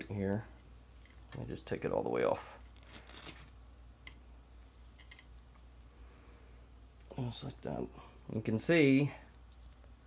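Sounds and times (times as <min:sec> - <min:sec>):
low steady hum: 0:00.0 - 0:10.0
cloth rustling: 0:02.6 - 0:03.6.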